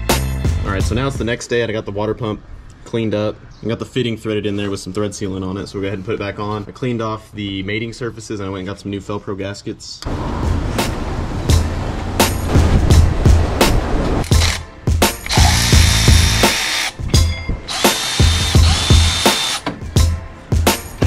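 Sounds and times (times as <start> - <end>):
background music: 0.0 - 1.6, 10.1 - 21.0
ratchet clicking: 15.2 - 17.0, 17.7 - 19.7.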